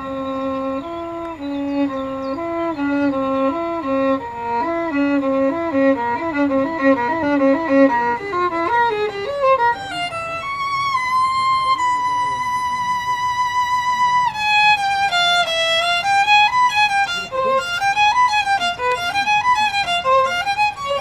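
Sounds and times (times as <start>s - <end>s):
solo violin playing: 0.0s - 21.0s.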